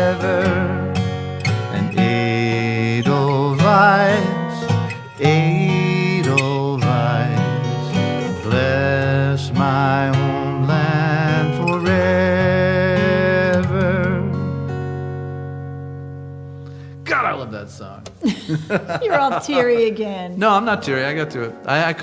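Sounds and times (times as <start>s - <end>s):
person singing with vibrato: 0.0s - 1.1s, 1.7s - 14.5s
acoustic guitars playing: 0.0s - 22.0s.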